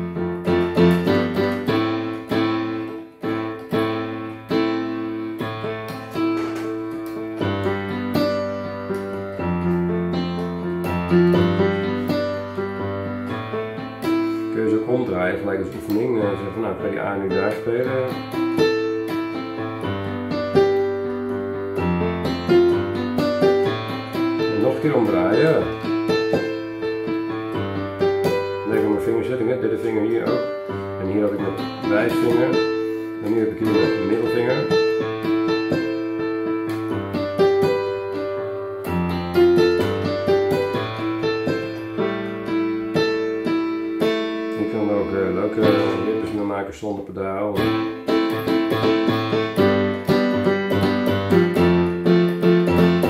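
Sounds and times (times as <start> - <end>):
keyboard piano notes: 0.0 - 53.0.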